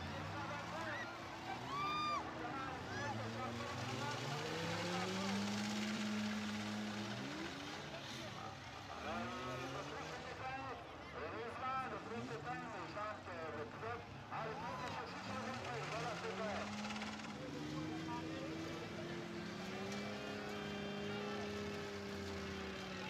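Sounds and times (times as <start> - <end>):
car engines revving: 0.0 - 23.0
crowd talking and shouting: 0.0 - 23.0.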